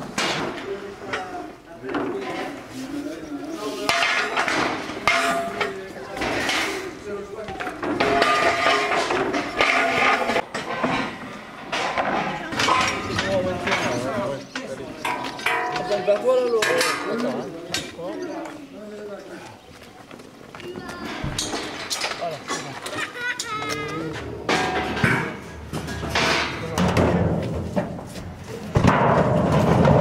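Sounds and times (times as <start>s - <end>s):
people talking: 0.5s - 8.9s, 12.0s - 25.2s, 26.2s - 27.3s
metal clanks and knocks: 3.9s - 6.8s, 7.5s - 18.0s, 21.1s - 23.5s, 24.4s - 30.0s.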